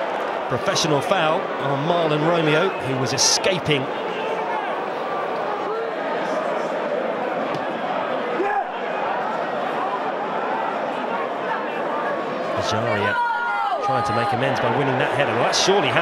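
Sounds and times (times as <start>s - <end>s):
stadium crowd din: 0.0s - 16.0s.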